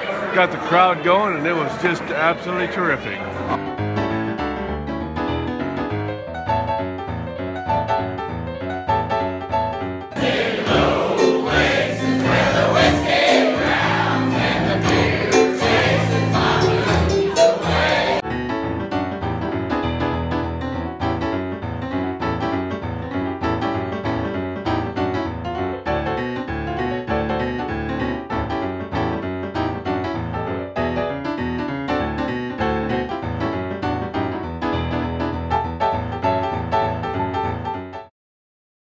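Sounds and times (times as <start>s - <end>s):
piano music with quick notes: 0.0s - 38.1s.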